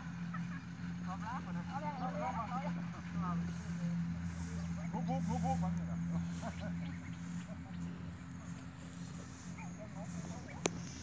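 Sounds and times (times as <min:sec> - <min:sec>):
engine humming: 0:00.0 - 0:11.0.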